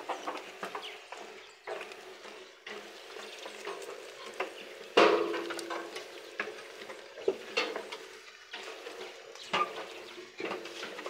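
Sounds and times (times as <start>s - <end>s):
animals scuffling and crunching: 0.0s - 11.0s.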